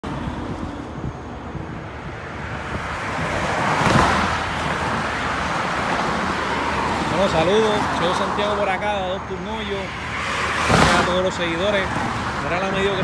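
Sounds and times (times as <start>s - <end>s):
road traffic passing: 0.0s - 13.0s.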